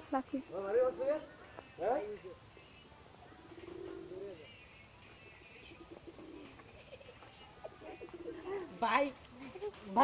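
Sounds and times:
faint bird calls: 2.6 - 8.8.

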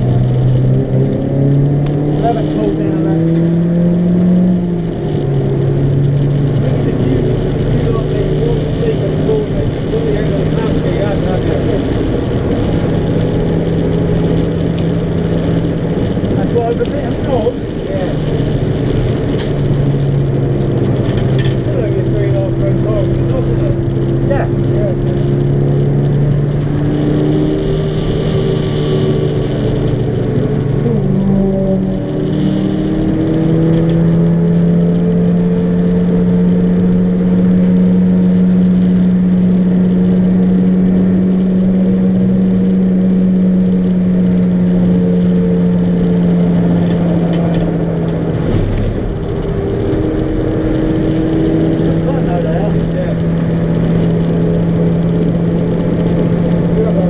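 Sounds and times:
car engine at high revs: 0.0 - 57.0.

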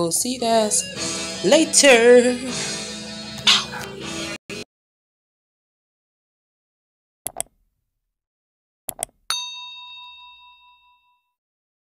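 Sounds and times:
mouse clicks: 7.3 - 7.6, 8.9 - 9.2
notification bell ding: 9.3 - 11.4.

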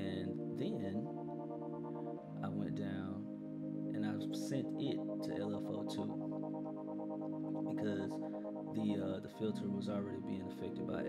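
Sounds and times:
sustained synth pad chord: 0.0 - 11.0.

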